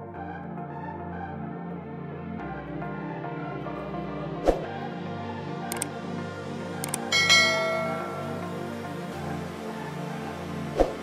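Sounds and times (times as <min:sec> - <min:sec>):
background music: 0:00.0 - 0:11.0
bright bell chime: 0:07.1 - 0:08.8.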